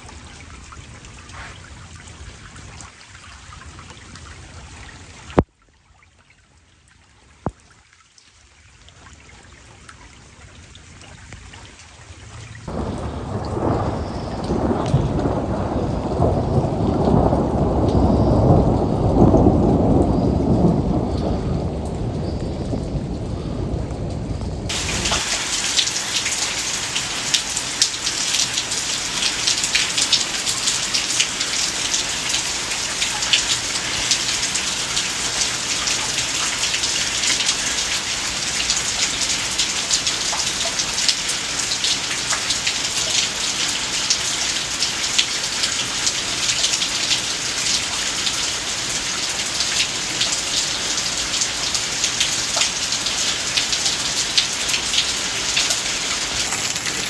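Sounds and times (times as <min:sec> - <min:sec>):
heavy rain: 0:00.0 - 0:05.5, 0:07.4 - 0:57.0.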